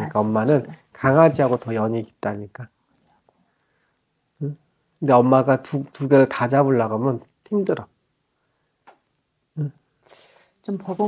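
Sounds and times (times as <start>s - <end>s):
person saying a word: 0.0s - 0.8s.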